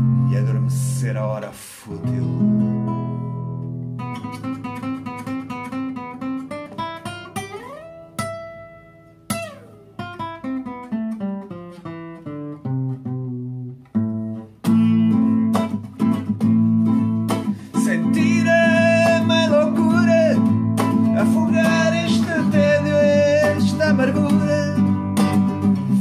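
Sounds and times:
acoustic guitar picked arpeggios: 0.0s - 26.0s
strummed guitar chords: 0.0s - 26.0s.

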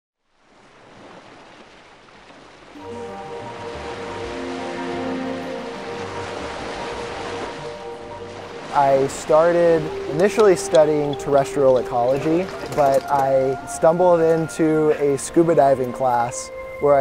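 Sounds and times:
ocean waves and surf: 0.2s - 17.0s
soft background music: 2.7s - 17.0s.

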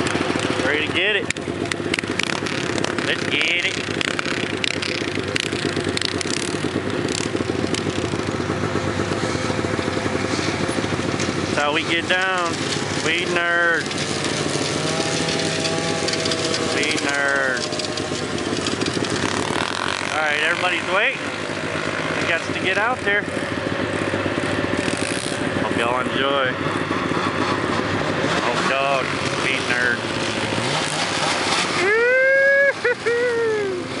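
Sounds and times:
snowmobile engine running: 0.0s - 34.0s
person shouting: 31.8s - 34.0s.

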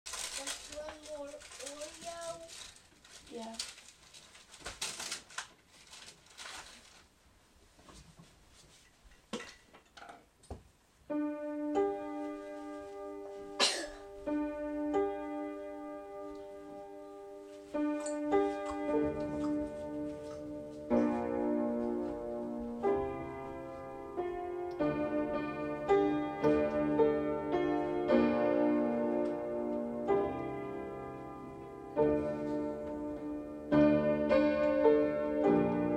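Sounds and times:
rustles: 0.1s - 9.3s
piano slow chords: 11.0s - 35.9s.

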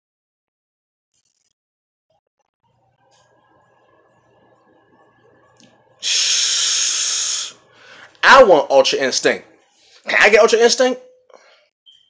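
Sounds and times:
man's loud breath hiss: 6.0s - 8.1s.

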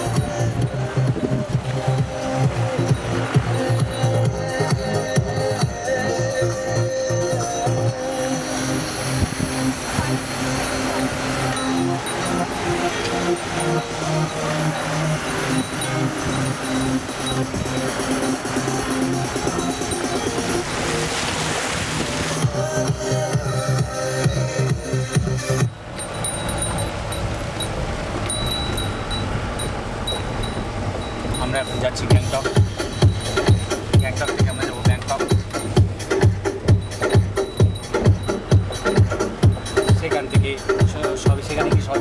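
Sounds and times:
music: 0.0s - 27.3s, 30.2s - 42.0s
road noise: 0.0s - 42.0s
vehicle engine hum: 0.0s - 42.0s
thin high ringing tone: 1.9s - 7.7s, 8.8s - 20.7s, 23.2s - 42.0s.

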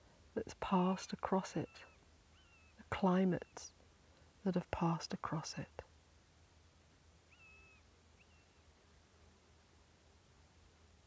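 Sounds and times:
whistled bird calls: 1.6s - 2.8s, 7.3s - 8.6s.

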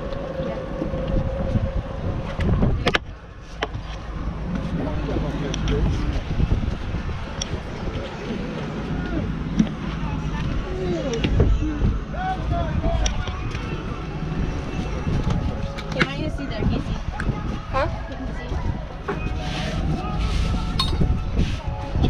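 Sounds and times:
low rumble: 0.0s - 22.0s
people chatting: 4.7s - 6.6s, 7.8s - 22.0s.

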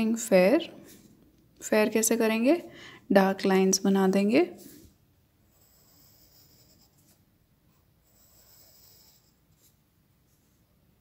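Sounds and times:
pencil scratching on paper: 5.4s - 10.7s.

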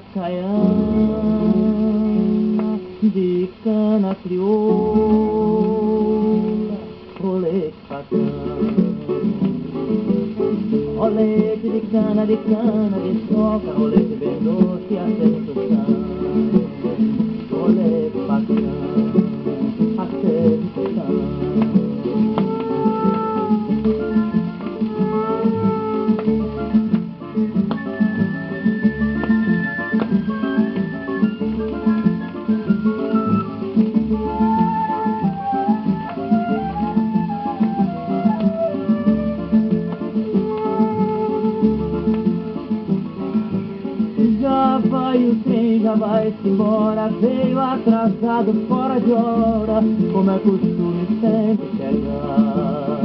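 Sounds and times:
plucked and strummed guitars: 0.0s - 53.0s
wavering flute-like melody: 22.0s - 27.0s, 27.7s - 43.0s.

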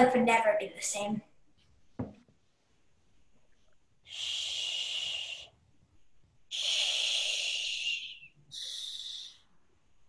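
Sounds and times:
person shushing: 6.5s - 9.4s.

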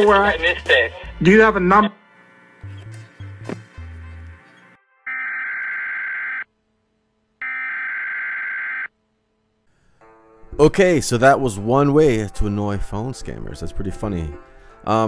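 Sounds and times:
long electronic alert beeps: 5.1s - 6.4s, 7.4s - 8.9s.

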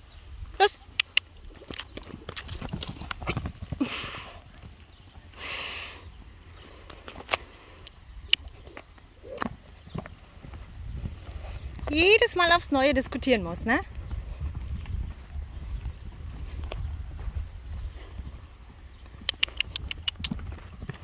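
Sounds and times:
horse hoofbeats on sand: 1.6s - 5.3s, 8.3s - 21.0s.

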